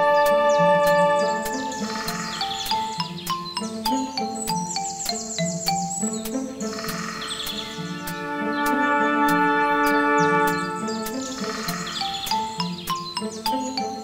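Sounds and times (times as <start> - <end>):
birdsong chirps: 0.0 - 14.0
mellotron chords: 0.0 - 14.0.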